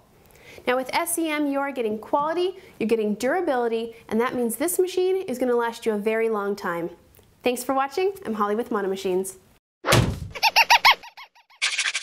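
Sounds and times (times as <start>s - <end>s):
sudden hit: 9.9s - 10.4s.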